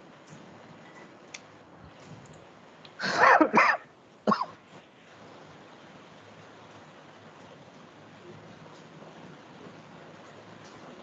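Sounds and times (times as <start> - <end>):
person coughing: 3.0 - 4.6.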